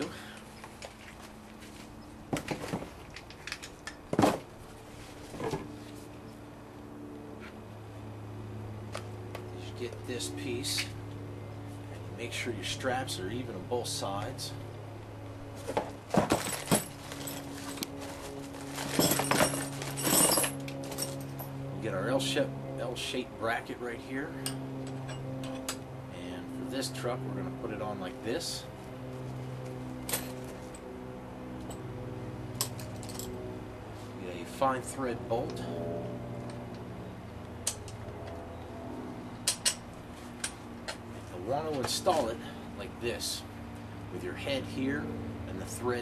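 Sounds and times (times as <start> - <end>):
steady low hum: 0.0 - 46.0
metal hardware clinking and rattling: 2.4 - 4.4, 15.7 - 21.5, 32.6 - 33.4, 39.4 - 41.0.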